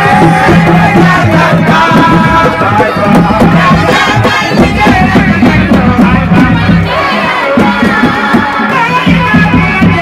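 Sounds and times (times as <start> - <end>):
crowd shouting and cheering: 0.0 - 10.0
drum strokes: 0.0 - 10.0.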